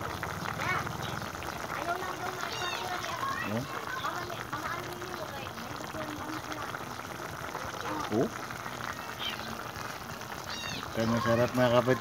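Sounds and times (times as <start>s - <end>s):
pot simmering with bubbling hiss: 0.0s - 12.0s.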